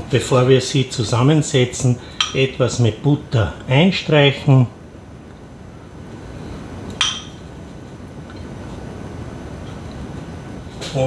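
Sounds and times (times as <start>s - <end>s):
kitchenware clink: 2.2s - 2.5s, 7.0s - 7.4s.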